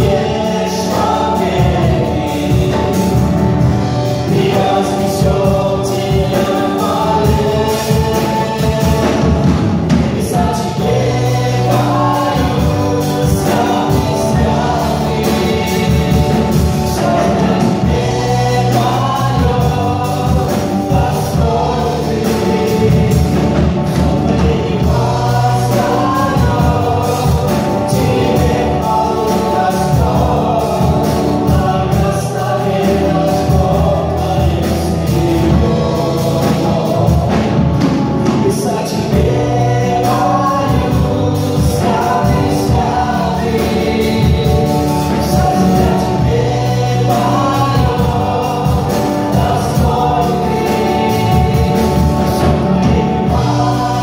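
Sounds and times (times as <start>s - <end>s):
drums: 0.0s - 54.0s
guitars: 0.0s - 54.0s
men and women singing together: 0.0s - 54.0s.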